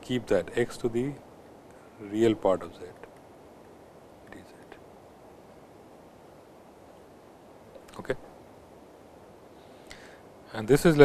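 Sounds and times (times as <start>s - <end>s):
low recording hiss: 0.0s - 11.0s.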